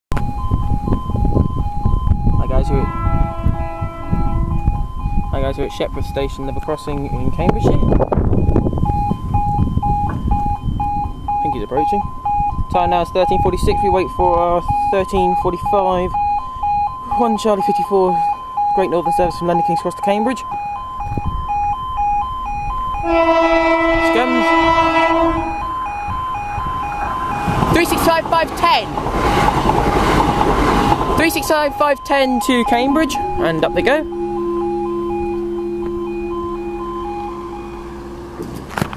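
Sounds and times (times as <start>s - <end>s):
level crossing two-tone alarm: 0.1s - 28.9s, 31.2s - 38.4s
train horn blast: 2.6s - 4.8s, 23.0s - 25.7s, 33.0s - 38.4s
low rumbling noise: 24.5s - 38.5s.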